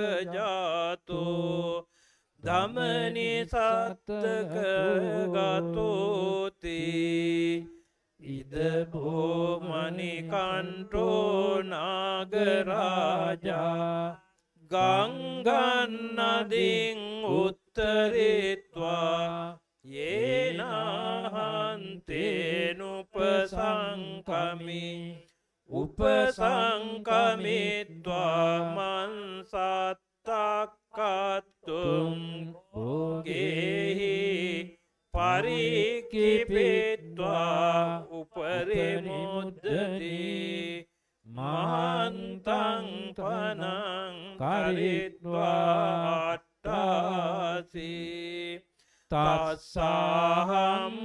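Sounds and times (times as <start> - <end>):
monks chanting over microphones: 0.0 - 1.8, 8.2 - 48.5, 49.1 - 51.0.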